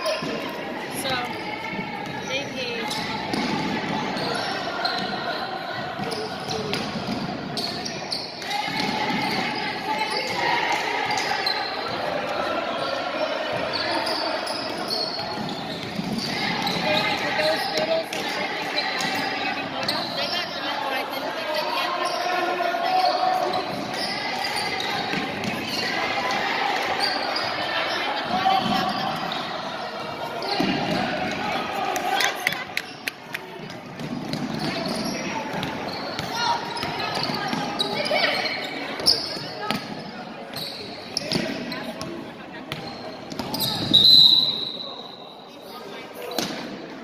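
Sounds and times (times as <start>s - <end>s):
voices echoing in gym: 0.0s - 47.0s.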